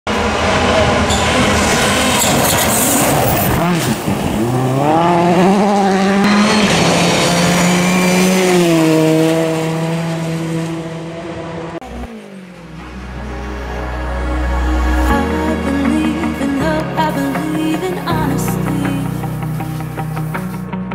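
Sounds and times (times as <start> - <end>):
rally car engine at high revs: 0.1 - 13.8
low drone: 11.6 - 20.9.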